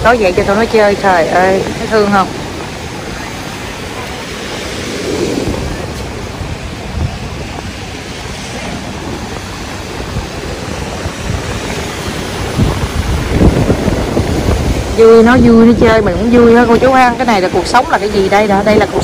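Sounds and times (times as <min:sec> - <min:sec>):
ocean surf washing onto sand: 0:00.0 - 0:19.0
wind buffeting microphone: 0:00.0 - 0:19.0.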